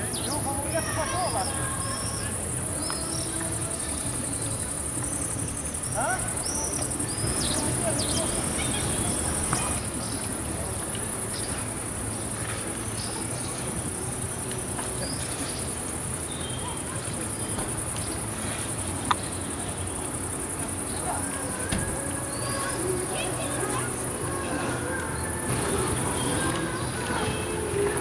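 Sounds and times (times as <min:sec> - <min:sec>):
crickets chirring: 0:00.0 - 0:28.0
low outdoor background noise: 0:00.0 - 0:28.0.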